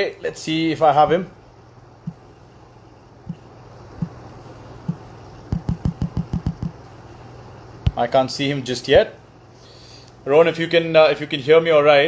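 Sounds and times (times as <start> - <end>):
low steady hum: 0.0 - 12.0
fingers tapping phone screen: 4.8 - 6.8.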